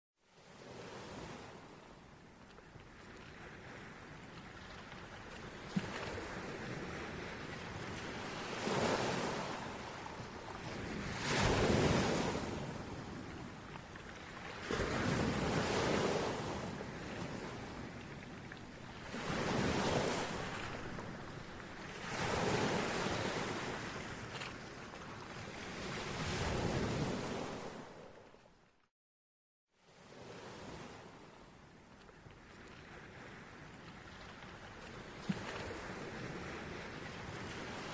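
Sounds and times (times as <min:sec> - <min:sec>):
sea waves washing in: 0:02.9 - 0:28.2, 0:32.4 - 0:37.9.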